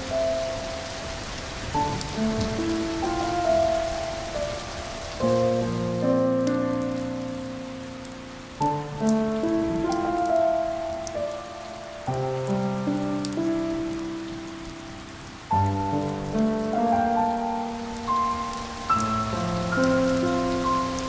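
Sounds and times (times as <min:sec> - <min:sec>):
soft instrumental music: 0:00.0 - 0:21.0
steady rain: 0:00.0 - 0:21.0.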